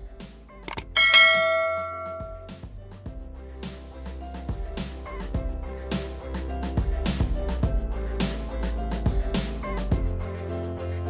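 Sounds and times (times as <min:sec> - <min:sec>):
background music: 0:00.0 - 0:11.0
bell chime: 0:00.9 - 0:02.5.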